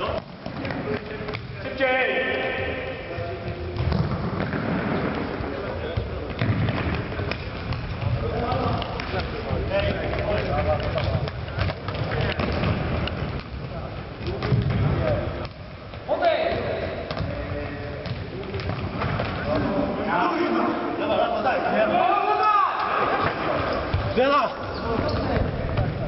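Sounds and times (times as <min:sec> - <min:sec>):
players shouting: 0:19.5 - 0:25.1.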